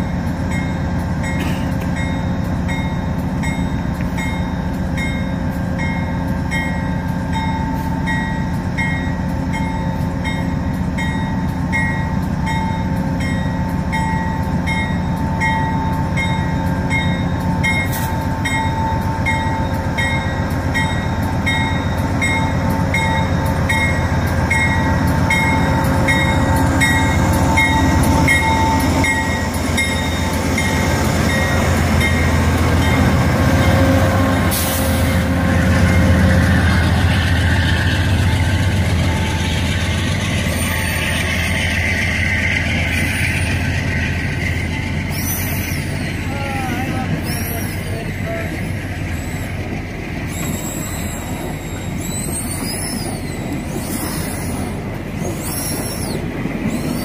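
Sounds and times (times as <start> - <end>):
locomotive bell ringing: 0.0 - 55.4
train wheels squealing: 0.0 - 57.0.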